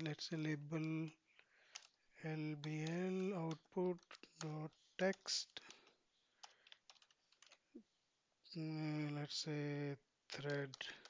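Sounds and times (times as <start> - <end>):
typing on computer keyboard: 0.0 - 7.6, 10.4 - 11.0.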